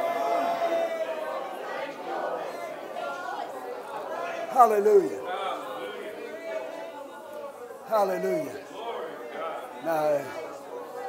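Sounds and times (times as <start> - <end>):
congregation murmuring prayer: 0.0 - 11.0.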